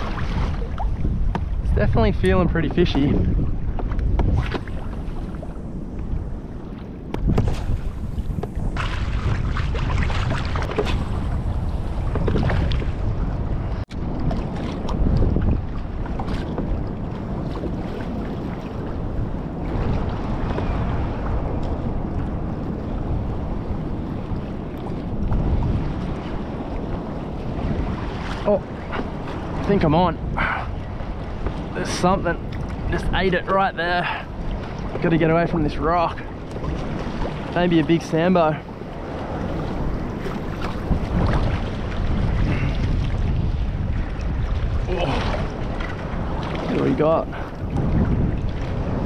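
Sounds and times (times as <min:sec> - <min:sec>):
waves lapping against kayak hull: 0:00.0 - 0:49.0
wind buffeting microphone: 0:00.0 - 0:49.0.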